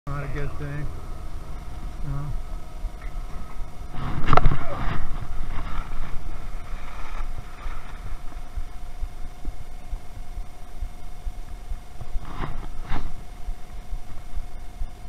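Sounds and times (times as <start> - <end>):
wind on microphone: 0.9 - 15.0
skis scraping on hard snow: 3.9 - 8.4
skis sliding on packed snow: 4.0 - 8.5.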